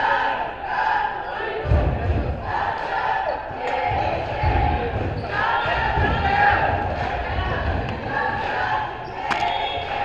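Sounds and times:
indistinct voices echoing: 0.0s - 10.0s.

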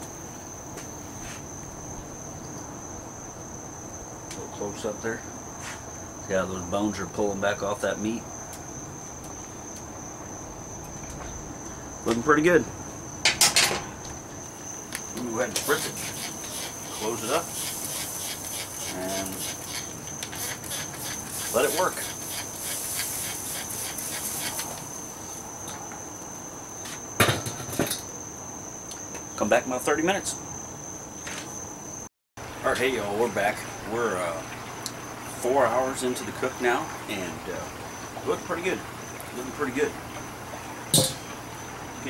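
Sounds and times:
insects droning: 0.0s - 42.0s
metal lid clanking: 13.2s - 13.9s, 40.9s - 41.4s
spray bottle squirts: 15.6s - 24.7s.

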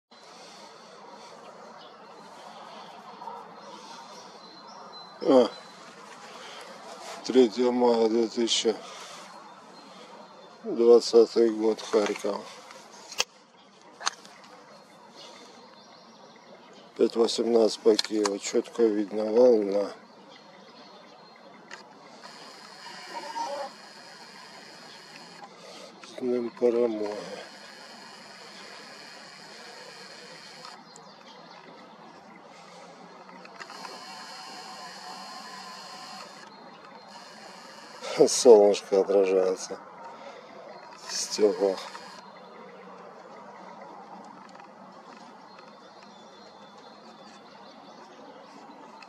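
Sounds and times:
zoom lens motor whirring: 22.2s - 25.5s, 27.0s - 30.8s, 33.5s - 38.2s, 41.0s - 42.2s.

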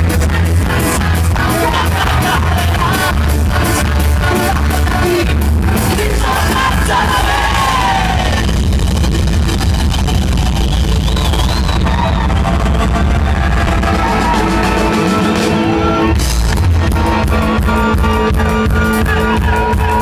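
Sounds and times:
voices shouting and singing: 0.0s - 8.5s
ska-rock band playing loud: 0.0s - 20.0s.

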